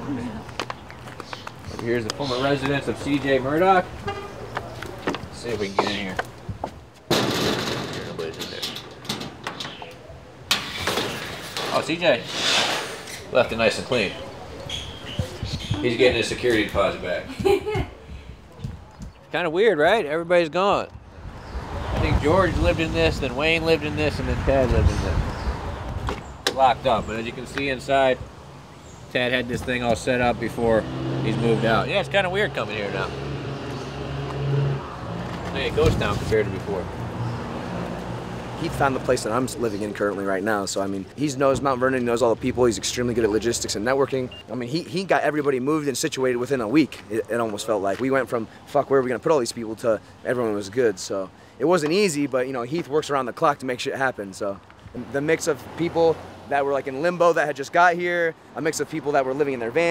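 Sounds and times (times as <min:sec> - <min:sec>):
locked shed door rattling: 0:07.1 - 0:11.9.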